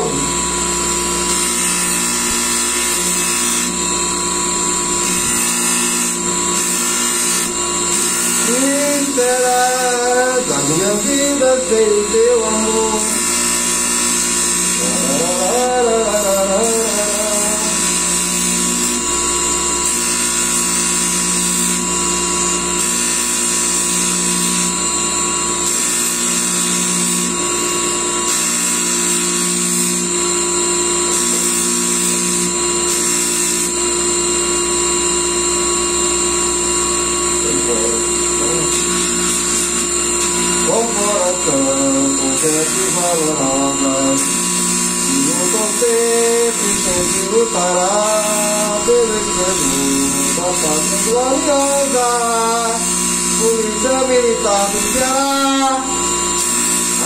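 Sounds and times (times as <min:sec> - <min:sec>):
bench polisher whining: 0:00.0 - 0:57.0
metal part polished on wheel: 0:01.2 - 0:03.8, 0:04.7 - 0:19.1, 0:37.4 - 0:57.0
man singing: 0:08.4 - 0:13.4, 0:14.7 - 0:18.2, 0:40.6 - 0:56.0.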